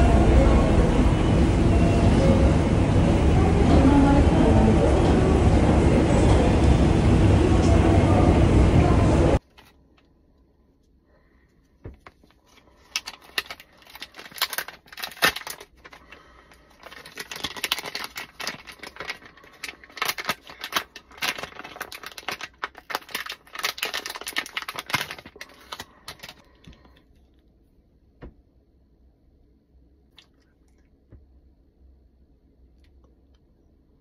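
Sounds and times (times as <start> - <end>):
plastic package crackling and tearing: 11.9 - 27.0.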